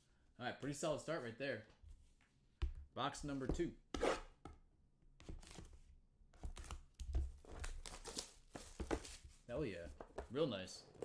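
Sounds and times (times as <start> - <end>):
wrapper and box tearing: 7.4 - 9.2.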